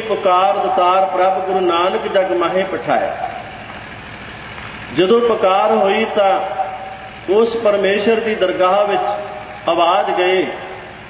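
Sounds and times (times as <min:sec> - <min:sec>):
man's word echoing: 0:00.0 - 0:03.4, 0:05.0 - 0:10.8
steady microphone background noise: 0:00.0 - 0:11.0.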